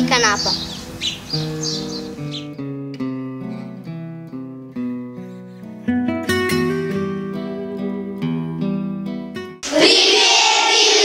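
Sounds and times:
birds chirping: 0:00.0 - 0:02.7
acoustic guitar picking: 0:00.0 - 0:09.6.

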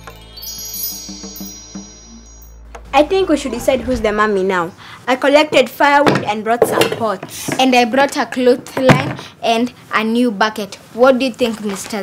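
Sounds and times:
shimmering bell-like chimes: 0:00.0 - 0:03.5
low drone: 0:01.7 - 0:05.1
short repeating low notes: 0:02.6 - 0:04.9.

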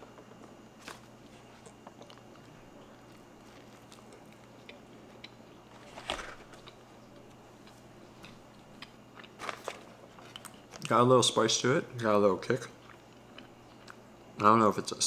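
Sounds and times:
person chewing food: 0:00.0 - 0:10.9, 0:12.6 - 0:14.1.

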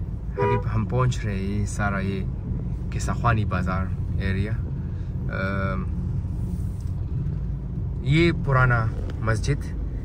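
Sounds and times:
car rumbling from inside cabin: 0:00.0 - 0:10.0.

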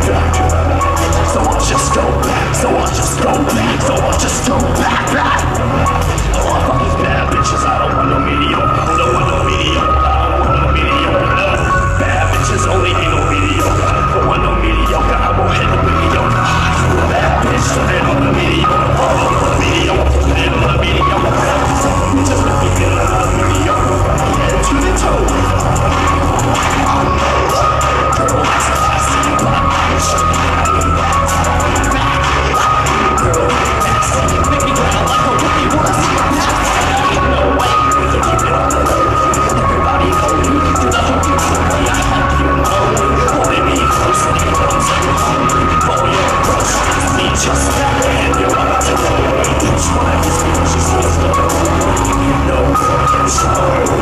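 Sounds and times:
electronic beat with deep bass: 0:00.0 - 0:54.0
high synth line: 0:00.0 - 0:54.0
person rapping: 0:00.0 - 0:54.0.

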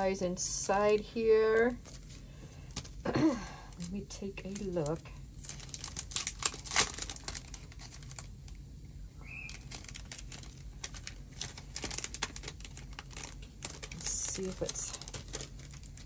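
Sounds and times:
plastic packaging crinkling: 0:00.0 - 0:08.6, 0:09.2 - 0:16.0.

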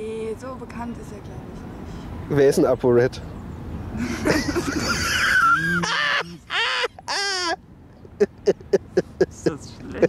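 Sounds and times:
rhythmic laughter: 0:04.0 - 0:09.4.

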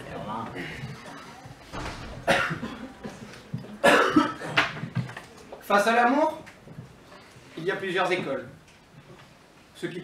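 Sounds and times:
person coughing: 0:02.2 - 0:03.2, 0:03.8 - 0:04.6.

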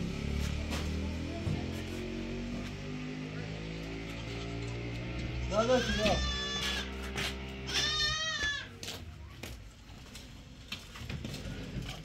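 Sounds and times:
livestock bleating: 0:04.0 - 0:07.0, 0:07.6 - 0:08.7.

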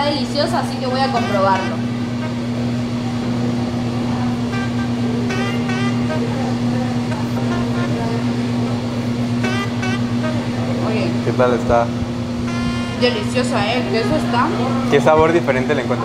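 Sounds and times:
faint distant voices: 0:00.0 - 0:16.0
steady low hum: 0:00.0 - 0:16.0.

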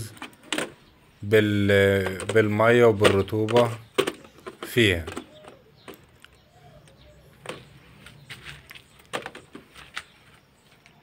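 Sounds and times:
plastic bottle clicks and knocks: 0:02.0 - 0:06.3.

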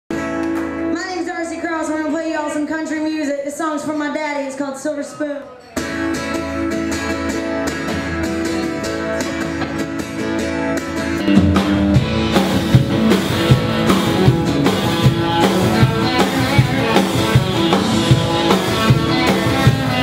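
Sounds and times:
electric guitar: 0:00.1 - 0:02.4, 0:05.8 - 0:20.0
acoustic guitar: 0:00.1 - 0:02.7, 0:05.5 - 0:20.0
drum kit beat: 0:05.8 - 0:20.0
upright bass: 0:05.8 - 0:20.0.

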